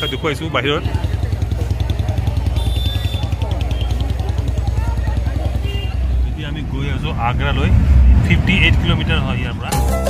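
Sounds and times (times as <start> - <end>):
many people talking: 0.0 - 10.0
motorbike and traffic rumble: 0.0 - 10.0.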